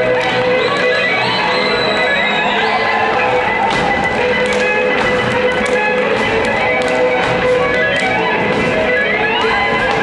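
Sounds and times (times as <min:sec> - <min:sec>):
folk dance music: 0:00.0 - 0:10.0
feet stamping on stage floor: 0:02.7 - 0:10.0.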